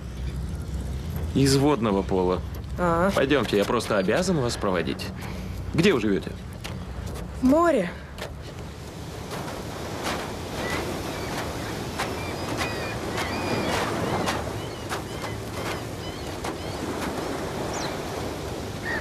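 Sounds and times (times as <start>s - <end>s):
sea waves washing on shore: 0.0s - 19.0s.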